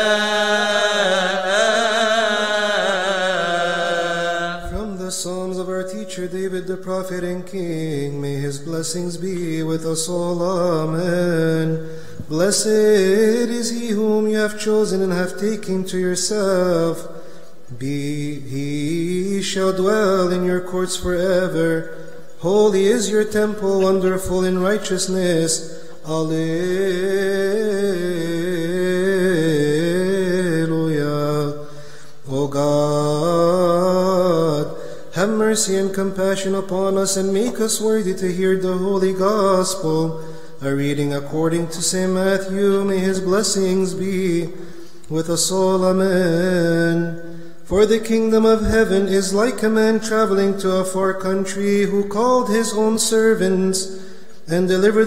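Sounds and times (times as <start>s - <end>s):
man chanting prayer: 0.0s - 55.0s.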